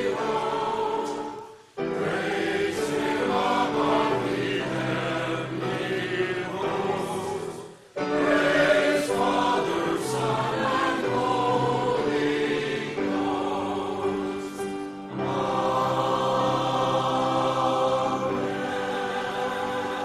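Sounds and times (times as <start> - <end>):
choir singing held chords: 0.0 - 20.0.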